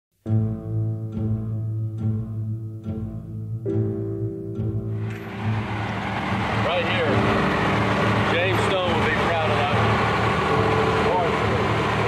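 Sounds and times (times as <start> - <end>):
engine idling: 5.0 - 12.0
voices calling: 5.3 - 12.0.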